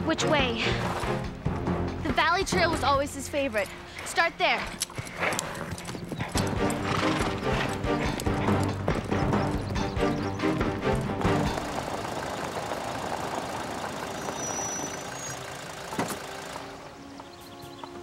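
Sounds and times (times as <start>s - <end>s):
orchestral music score: 0.0s - 4.8s, 6.3s - 11.9s, 16.1s - 18.0s
horse hoofbeats: 0.0s - 18.0s.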